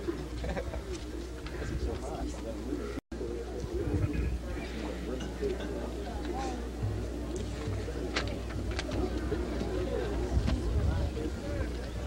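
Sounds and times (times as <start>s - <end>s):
murmur of crowd chatter: 0.0s - 12.0s
steady low hum: 0.0s - 12.0s.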